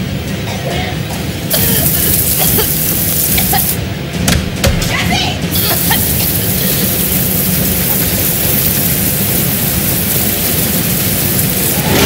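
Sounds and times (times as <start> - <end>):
insects swarming hiss: 1.5 - 3.8, 5.5 - 12.0.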